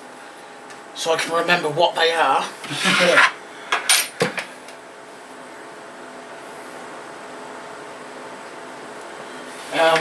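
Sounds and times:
computer fans humming: 0:00.0 - 0:10.0.

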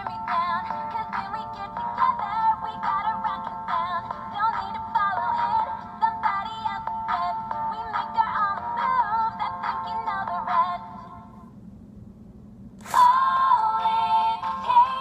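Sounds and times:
pop song through toy speaker: 0:00.0 - 0:11.2, 0:12.8 - 0:15.0.

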